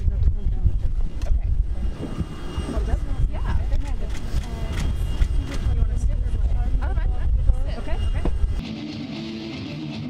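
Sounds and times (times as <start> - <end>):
people talking: 0.0 - 2.1, 2.7 - 8.4.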